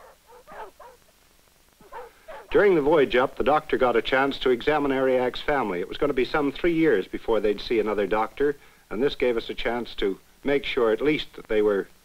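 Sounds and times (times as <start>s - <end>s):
dogs whimpering: 0.0s - 1.0s, 1.8s - 2.6s.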